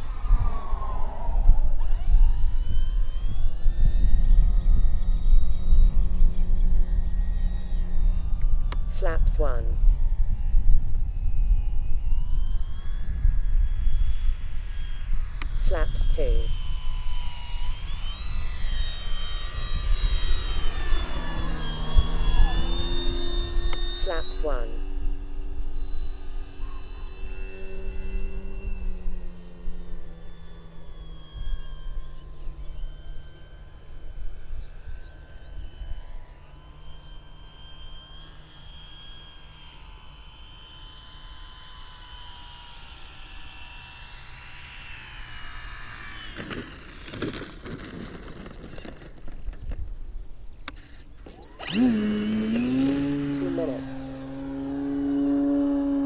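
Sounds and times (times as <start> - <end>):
wind rumble on microphone: 0.0 - 24.0
model plane motor and propeller humming: 0.0 - 56.0.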